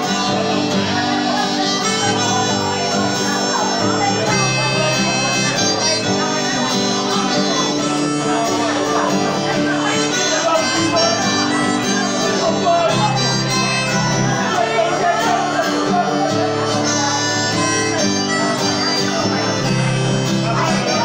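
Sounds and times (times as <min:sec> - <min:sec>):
harmonica melody: 0:00.0 - 0:21.0
strummed acoustic guitar: 0:00.0 - 0:21.0.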